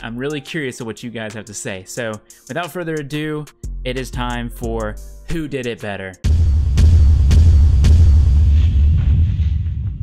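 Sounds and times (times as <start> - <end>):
sharp hits: 6.3 - 10.0.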